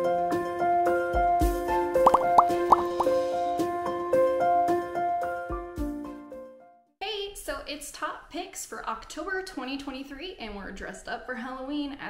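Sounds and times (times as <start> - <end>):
cartoon bubble pops: 2.1 - 3.2
light plinking music: 2.1 - 3.2.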